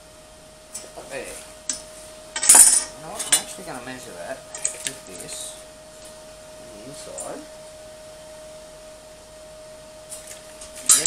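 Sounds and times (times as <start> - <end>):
faint steady hum: 0.0 - 11.0
steel frame clacking: 2.4 - 3.5, 10.8 - 11.0.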